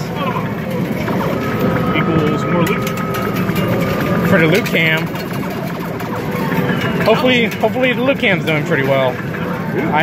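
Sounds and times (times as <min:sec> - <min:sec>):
arcade game music and jingles: 0:00.0 - 0:10.0
busy arcade din: 0:00.0 - 0:10.0.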